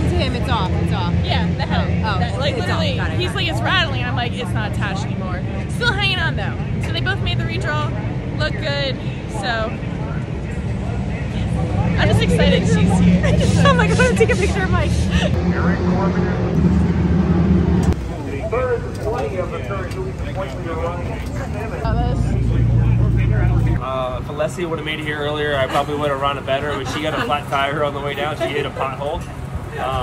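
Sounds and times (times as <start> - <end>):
women talking: 0.0 - 9.7, 12.0 - 15.4
low engine rumble: 0.0 - 30.0
women laughing: 12.0 - 15.4, 25.4 - 29.2.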